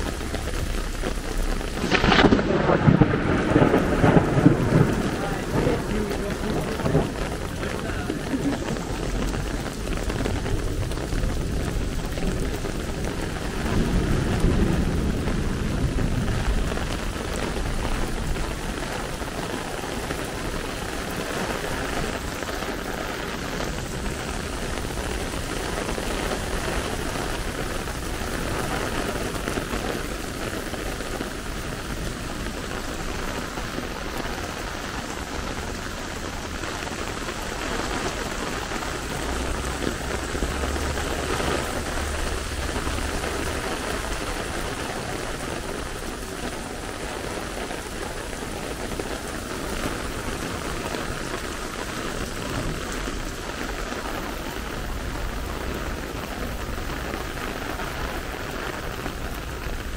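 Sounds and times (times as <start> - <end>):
heavy rain on paving and umbrellas: 0.0 - 59.9.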